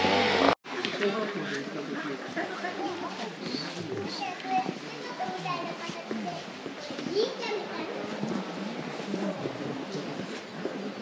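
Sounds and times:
people and children chattering: 0.0s - 11.0s.

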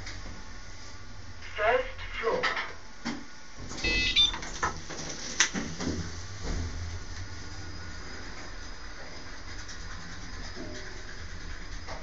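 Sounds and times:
lift drive humming: 3.5s - 12.0s.

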